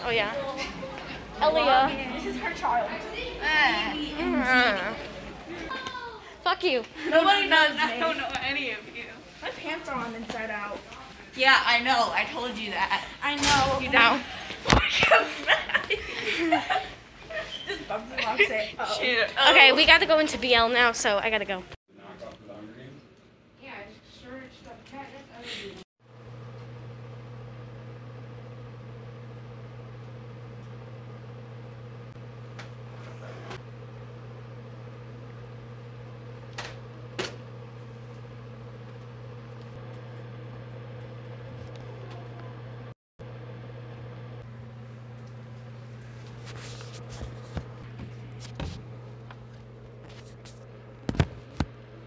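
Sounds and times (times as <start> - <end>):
low mechanical hum: 0.0 - 52.0.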